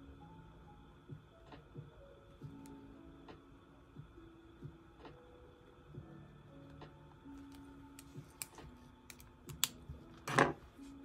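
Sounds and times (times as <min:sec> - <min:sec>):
faint soft music: 0:00.0 - 0:11.0.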